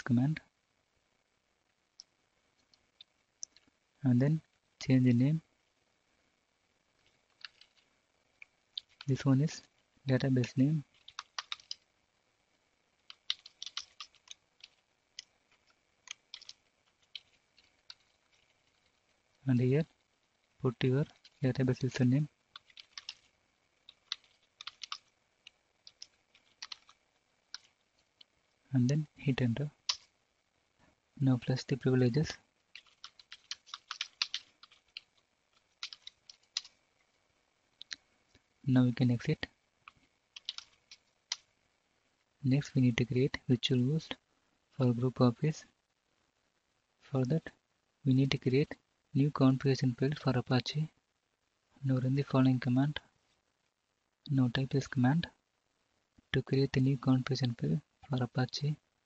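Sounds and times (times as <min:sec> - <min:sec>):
keyboard typing: 0:07.3 - 0:07.9, 0:08.8 - 0:09.2, 0:10.4 - 0:11.8, 0:13.0 - 0:19.0, 0:20.8 - 0:28.3, 0:29.7 - 0:30.1, 0:32.2 - 0:36.8, 0:39.9 - 0:41.5.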